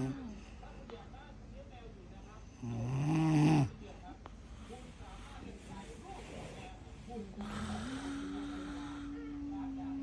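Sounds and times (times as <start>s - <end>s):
woman snoring: 7.4s - 10.0s.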